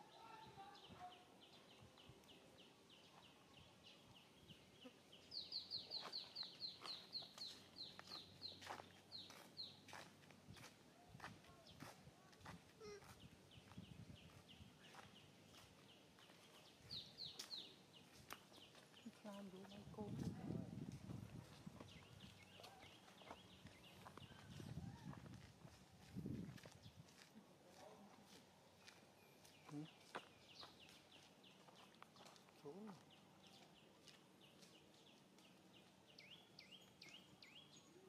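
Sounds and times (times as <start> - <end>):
small birds chirping: 0.0 - 38.0.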